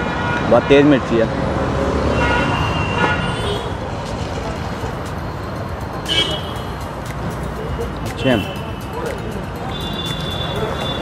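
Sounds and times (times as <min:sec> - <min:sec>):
street traffic: 0:00.0 - 0:11.0
high-pitched vehicle horn toot: 0:02.1 - 0:03.8, 0:05.9 - 0:06.8, 0:09.6 - 0:11.0.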